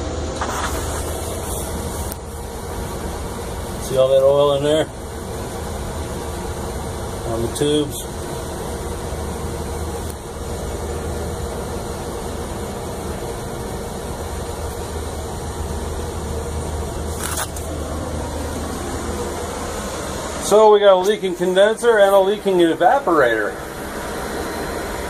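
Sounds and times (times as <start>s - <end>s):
air conditioning unit humming: 0.0s - 25.0s.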